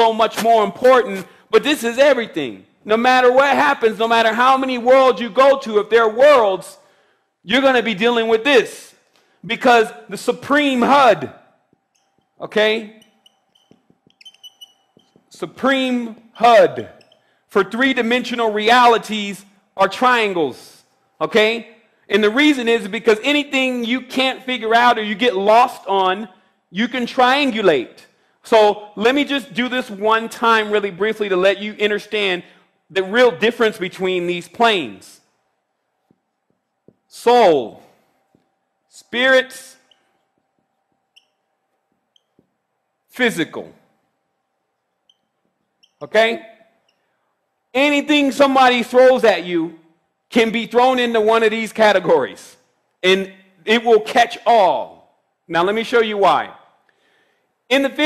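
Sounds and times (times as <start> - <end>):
faint high-pitched squeaks: 11.7 - 17.4, 36.0 - 42.8, 44.8 - 47.2.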